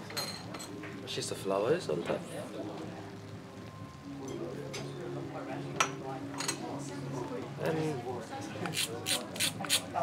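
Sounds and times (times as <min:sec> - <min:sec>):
tableware clinking: 0:00.0 - 0:00.8, 0:05.8 - 0:06.7.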